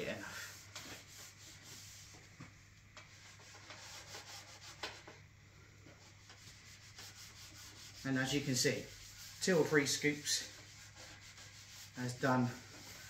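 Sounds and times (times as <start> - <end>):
cloth rubbing on wood: 0.0 - 5.1, 6.0 - 13.0.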